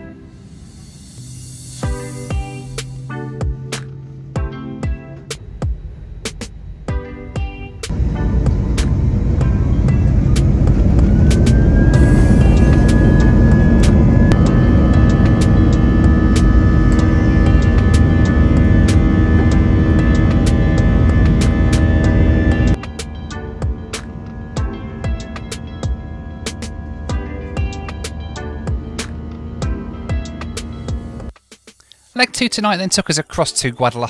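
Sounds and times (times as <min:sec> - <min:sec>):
jet engines roaring: 0:00.0 - 0:31.3
background music with beat: 0:01.5 - 0:32.3.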